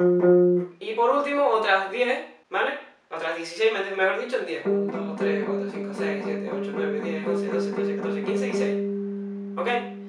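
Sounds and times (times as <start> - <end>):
palm-muted electric guitar notes: 4.6 - 10.0.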